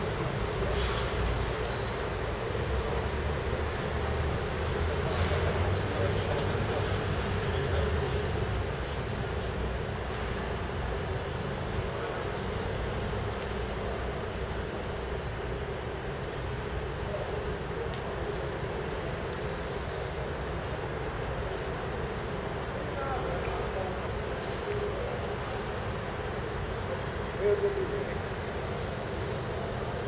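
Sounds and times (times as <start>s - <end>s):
distant voices: 0.0s - 30.0s
traffic rumble: 0.0s - 30.0s.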